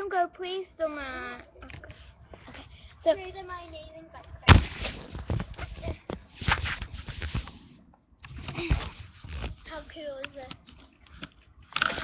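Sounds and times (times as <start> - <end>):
fingers rubbing and bumping microphone: 3.8 - 11.3
thump on microphone: 4.5 - 5.9.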